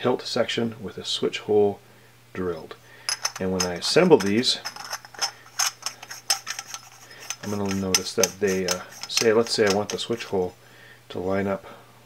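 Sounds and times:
small metallic clicks: 0:03.1 - 0:10.2.

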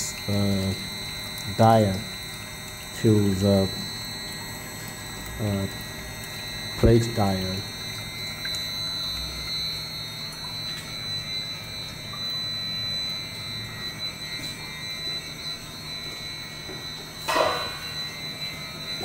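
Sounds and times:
high motor whine: 0:00.0 - 0:19.0
machine hum and fan noise: 0:00.0 - 0:19.0.

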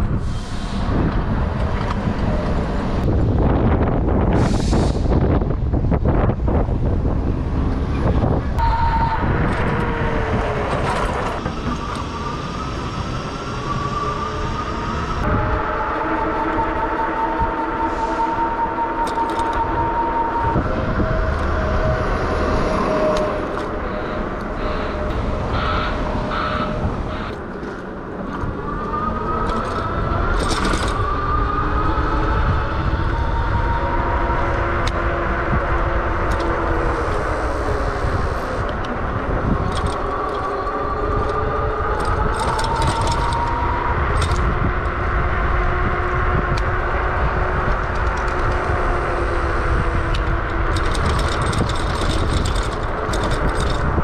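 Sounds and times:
wind rumble on microphone: 0:00.0 - 0:54.0.

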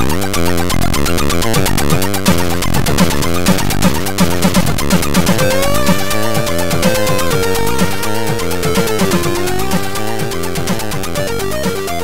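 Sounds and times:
chiptune synth melody and bass: 0:00.0 - 0:12.0
ticking percussion beat: 0:01.4 - 0:12.0.

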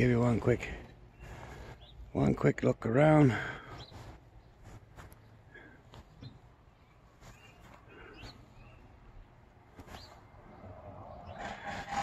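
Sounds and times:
rising bird chirps: 0:09.9 - 0:12.0.

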